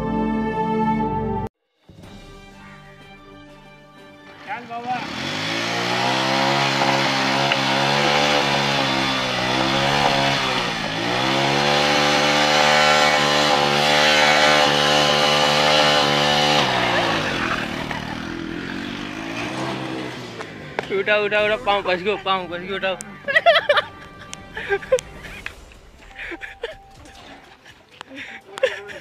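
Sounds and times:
motorcycle engine revving: 4.3s - 26.5s.

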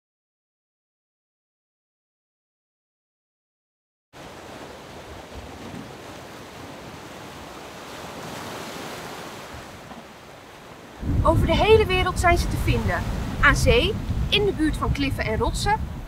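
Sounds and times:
sea surf: 4.2s - 16.0s
wind buffeting microphone: 10.9s - 16.0s.

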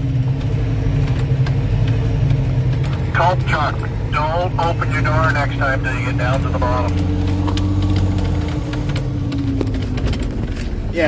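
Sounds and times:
diesel truck engine drone: 0.0s - 11.0s
handling clicks and rattles: 0.0s - 11.0s.

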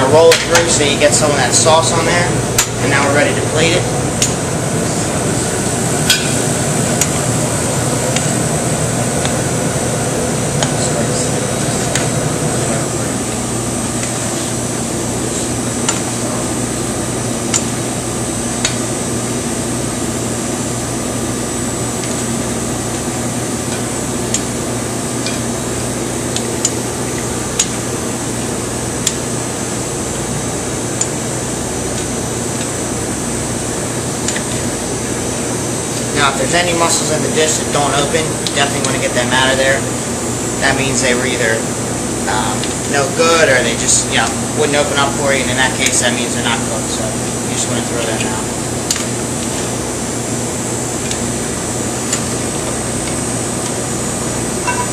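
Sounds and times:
kitchen ventilation hum: 0.0s - 54.9s.

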